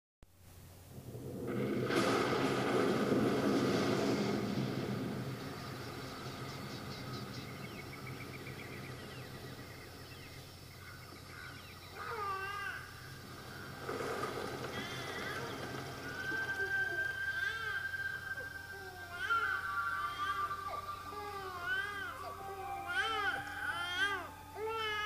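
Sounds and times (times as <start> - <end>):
low steady drone: 0.5 - 25.0
wavering pitched cries: 14.8 - 25.0.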